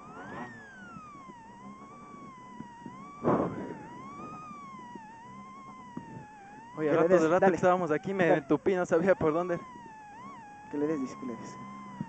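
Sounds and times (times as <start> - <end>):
rally car drivetrain whine: 0.0 - 12.0
loud burst of noise: 3.2 - 4.0.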